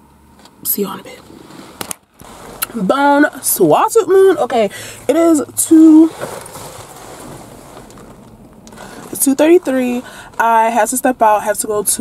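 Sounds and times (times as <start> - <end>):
car cabin rumble: 0.6 - 12.0.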